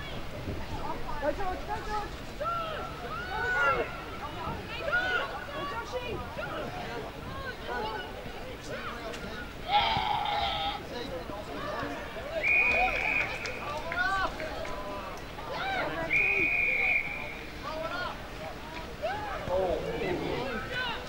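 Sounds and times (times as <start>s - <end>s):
crowd shouting: 2.4s - 6.7s, 19.0s - 21.0s
referee whistle blasts: 12.4s - 13.6s, 16.0s - 17.5s.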